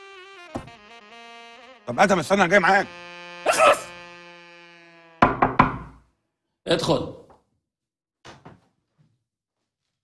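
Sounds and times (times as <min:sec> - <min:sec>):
knocks on a door: 0:05.2 - 0:06.0.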